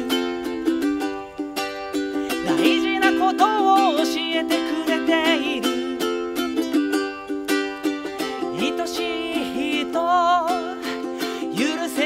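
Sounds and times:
ukulele strumming: 0.0s - 12.0s.

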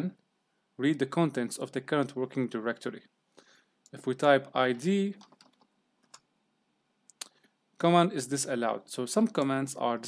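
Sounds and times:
faint computer keyboard keystrokes: 4.7s - 6.3s.

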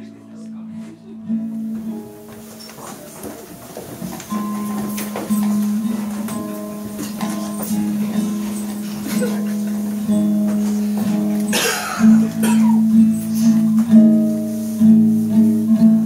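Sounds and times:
classical guitar plucked notes: 0.0s - 16.0s.

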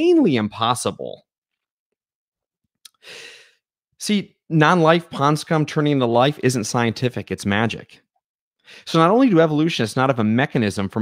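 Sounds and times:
person speaking: 0.0s - 1.3s, 4.0s - 8.0s
mouth click: 2.8s - 3.0s
person breathing: 2.9s - 3.6s, 8.6s - 8.9s.

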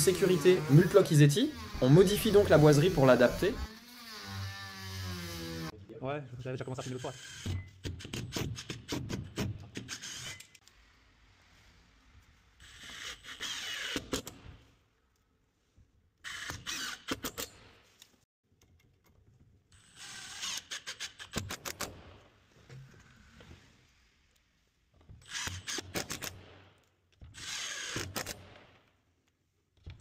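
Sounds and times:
impact driver driving screws: 12.6s - 14.5s, 16.2s - 17.6s, 19.8s - 22.2s, 25.1s - 28.8s.

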